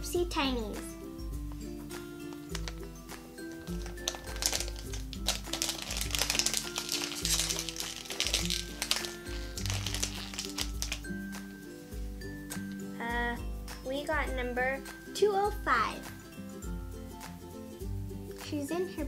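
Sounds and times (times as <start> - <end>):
background music: 0.0 - 19.0
plastic packet crinkling: 2.3 - 11.2.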